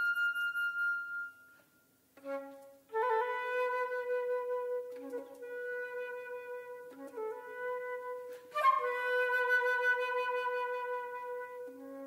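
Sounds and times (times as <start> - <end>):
flute holding a high note: 0.0 - 12.0.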